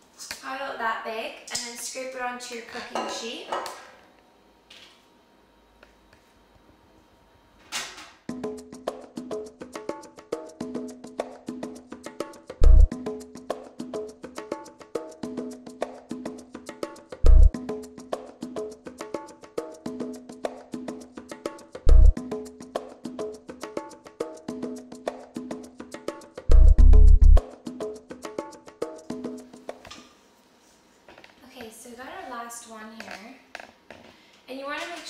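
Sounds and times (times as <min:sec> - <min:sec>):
upbeat percussive music: 0:08.3 - 0:29.7.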